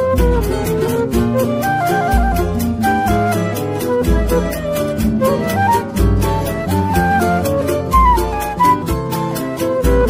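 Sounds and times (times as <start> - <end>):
guitar accompaniment: 0.0 - 10.0
quick melodic lead: 0.0 - 10.0.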